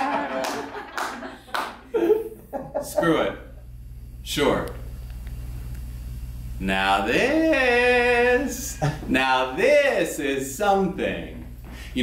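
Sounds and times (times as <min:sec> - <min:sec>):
audience clapping: 0:00.0 - 0:02.0
audience laughing: 0:00.0 - 0:03.3.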